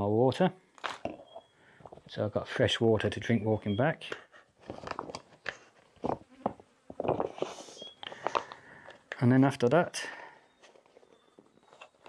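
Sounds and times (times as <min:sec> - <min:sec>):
plastic water bottle crinkling: 0:00.8 - 0:02.1, 0:04.6 - 0:09.1
insect buzzing: 0:05.9 - 0:09.0.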